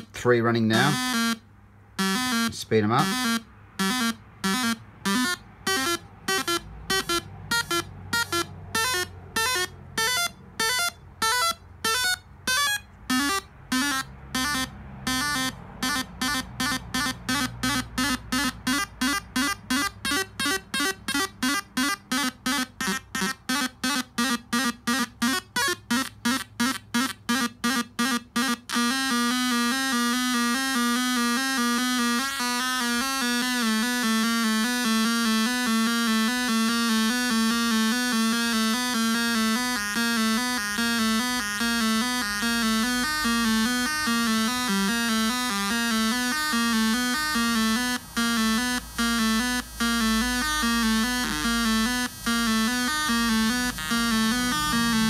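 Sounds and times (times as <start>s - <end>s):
synth sequencer electronic notes: 2.0s - 55.0s.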